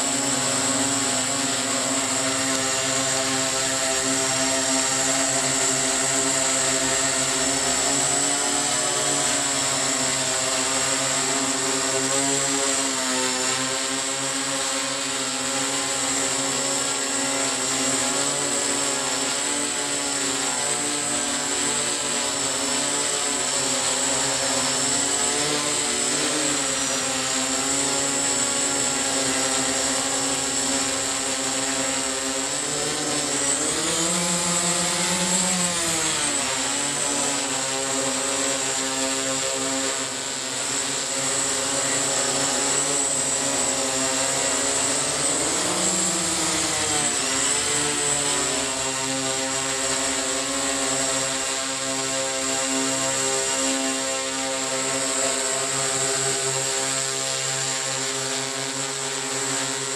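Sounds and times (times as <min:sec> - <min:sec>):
octocopter motors buzzing: 0:00.0 - 0:59.9.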